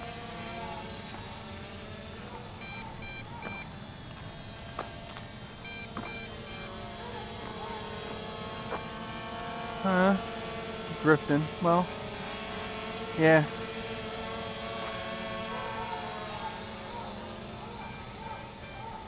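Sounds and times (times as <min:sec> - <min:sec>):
drone propellers buzzing: 0:00.0 - 0:19.0
high electronic beeps: 0:02.6 - 0:03.7, 0:05.6 - 0:06.8, 0:17.8 - 0:19.0.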